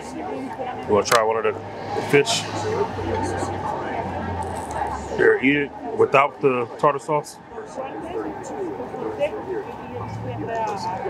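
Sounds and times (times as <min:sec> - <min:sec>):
people talking: 0:00.0 - 0:11.0
car driving past: 0:01.1 - 0:05.2.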